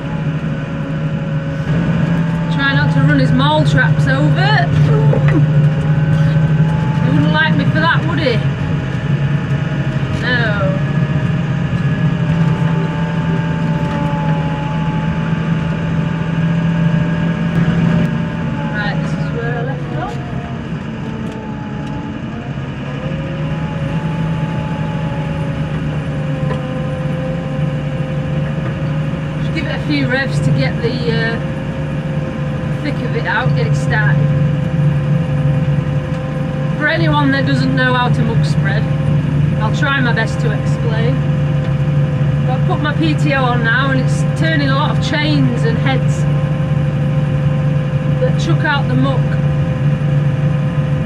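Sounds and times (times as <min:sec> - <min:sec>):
tractor engine from inside cab: 0:00.0 - 0:51.0.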